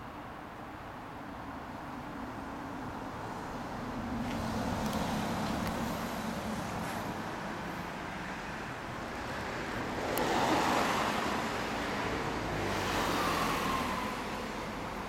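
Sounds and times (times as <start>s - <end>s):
vehicles passing on street: 0.0s - 15.0s.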